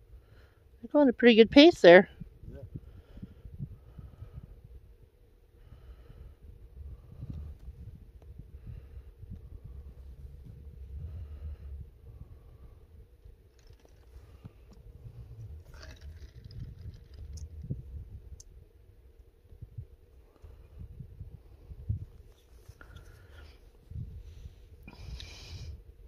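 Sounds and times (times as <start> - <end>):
wind buffeting microphone: 1.5 - 5.0, 5.8 - 13.2, 14.1 - 18.6, 19.5 - 23.2, 23.8 - 25.8.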